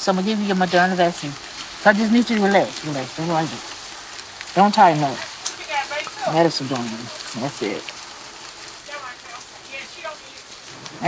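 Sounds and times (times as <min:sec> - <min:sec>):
steady rain: 0:00.0 - 0:11.0.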